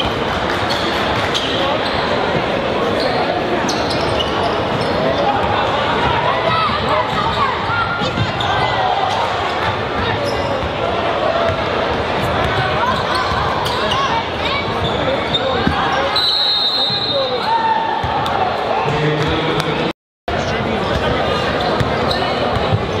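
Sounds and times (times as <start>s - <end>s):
spectator chatter: 0.0s - 23.0s.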